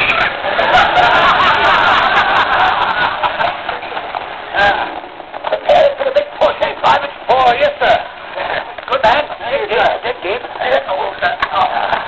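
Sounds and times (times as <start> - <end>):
voices talking on television: 0.0 - 12.0.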